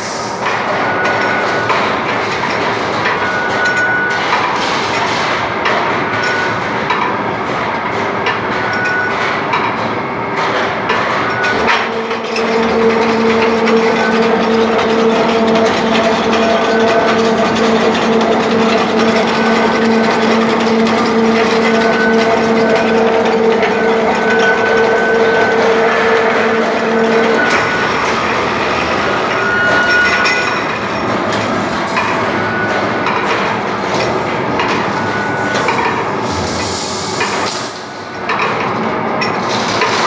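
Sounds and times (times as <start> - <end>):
machine mechanical clatter: 0.1 - 40.0
low machine hum: 11.0 - 38.3.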